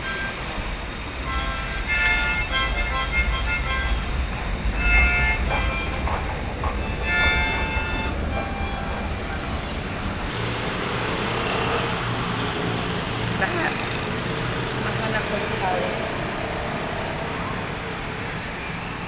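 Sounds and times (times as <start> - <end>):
train pulling into station: 0.0 - 19.0
music playing: 1.2 - 9.5.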